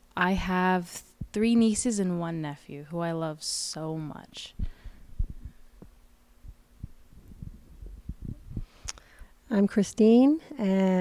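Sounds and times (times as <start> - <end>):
microphone handling thumps: 4.6 - 8.8.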